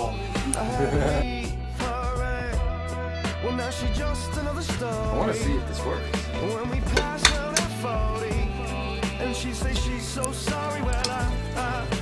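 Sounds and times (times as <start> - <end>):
song with vocals and drums: 0.0 - 12.0.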